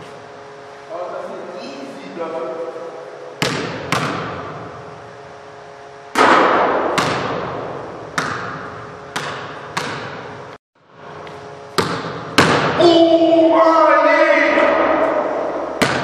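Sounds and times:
basketball bouncing on hardwood floor: 0:03.4 - 0:04.4, 0:06.9 - 0:07.5, 0:08.1 - 0:10.2, 0:11.7 - 0:12.7, 0:15.8 - 0:16.0.

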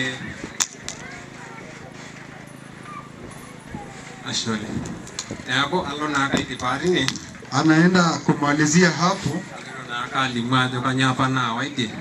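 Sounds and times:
faint background voices: 0:00.0 - 0:12.0.

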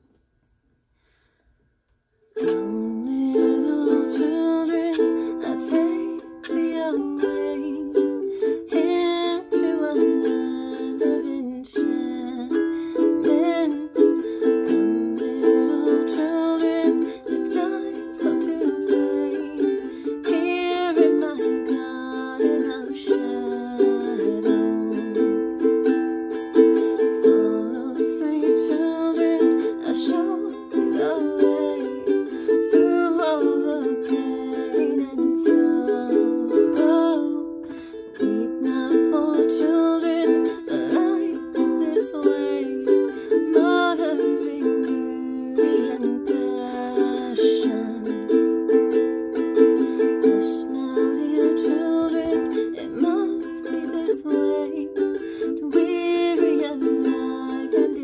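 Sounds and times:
woman singing softly: 0:02.4 - 0:25.9, 0:26.9 - 0:48.7, 0:49.9 - 0:58.0
ukulele strumming: 0:02.4 - 0:58.0.

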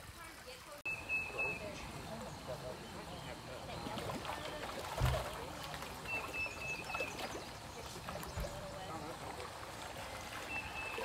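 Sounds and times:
fish splashing: 0:00.0 - 0:11.0
water trickling: 0:00.0 - 0:11.0
faint voices: 0:00.2 - 0:11.0.

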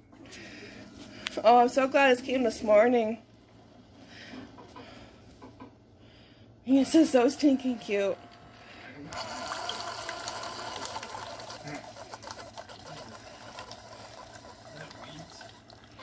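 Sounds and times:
coffee maker humming: 0:06.7 - 0:16.0
coffee pouring into mug: 0:09.1 - 0:16.0.

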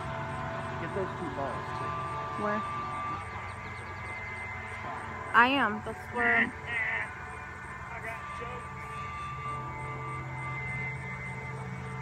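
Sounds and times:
background noise: 0:00.0 - 0:12.0
thin high tone: 0:00.0 - 0:12.0.

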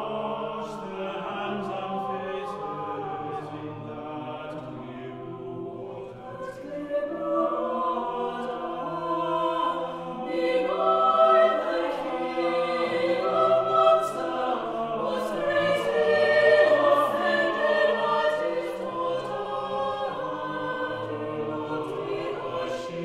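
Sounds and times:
choir singing: 0:00.0 - 0:23.0.

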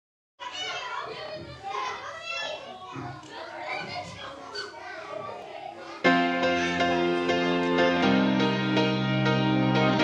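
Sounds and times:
children chattering and calling: 0:00.4 - 0:10.0.

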